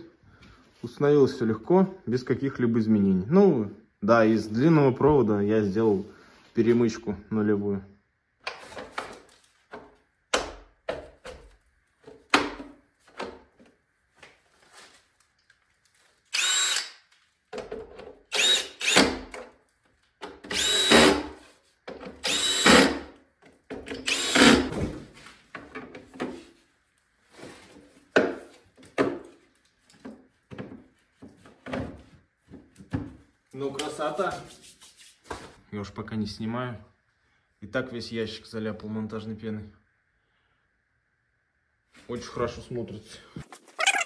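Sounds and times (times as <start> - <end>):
cordless drill driving screws: 16.3 - 17.0, 18.3 - 19.3, 20.5 - 21.3, 22.2 - 23.0, 23.9 - 24.7.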